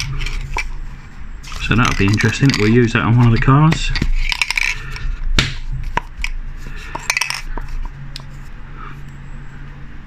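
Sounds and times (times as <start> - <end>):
steady low hum: 0.0 - 10.0
plastic packaging crackling: 1.4 - 4.9.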